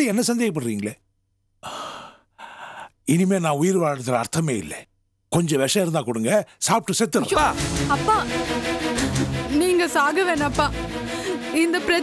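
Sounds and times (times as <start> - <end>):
man sighing breathily: 1.6 - 2.9.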